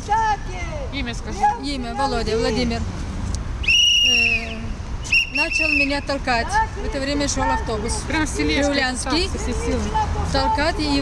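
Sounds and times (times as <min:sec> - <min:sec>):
whistle blast: 0:03.6 - 0:06.1.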